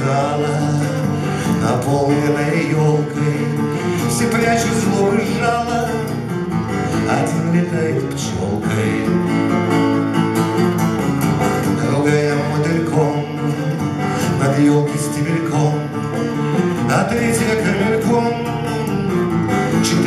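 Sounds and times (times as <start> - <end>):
man singing: 0.0 - 10.1, 11.4 - 20.0
acoustic guitar strummed: 0.0 - 20.0.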